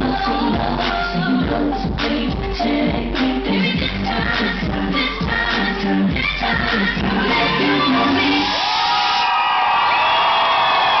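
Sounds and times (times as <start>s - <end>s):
loud dance music: 0.0s - 11.0s
audience cheering: 8.4s - 11.0s.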